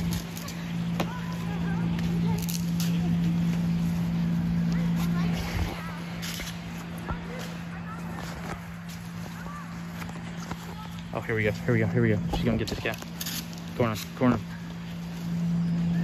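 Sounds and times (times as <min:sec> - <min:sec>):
distant children calling: 0:00.0 - 0:16.0
steady low hum: 0:00.0 - 0:16.0.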